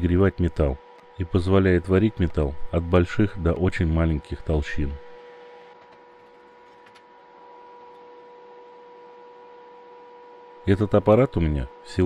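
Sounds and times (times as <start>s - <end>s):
electrical hum with high whine: 0.0s - 12.0s.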